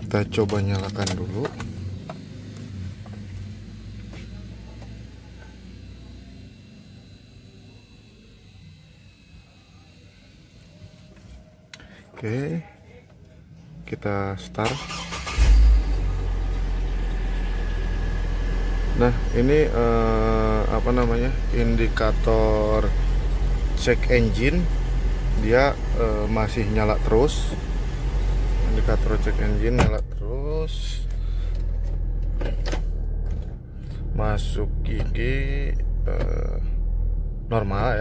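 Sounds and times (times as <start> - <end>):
car engine starting and idling: 0.0 - 5.1, 14.1 - 38.0.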